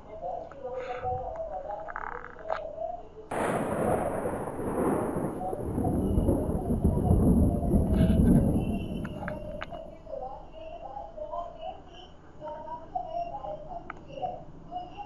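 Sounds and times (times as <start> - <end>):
thunder crack: 3.3 - 10.1
rolling thunder rumble: 3.3 - 10.2.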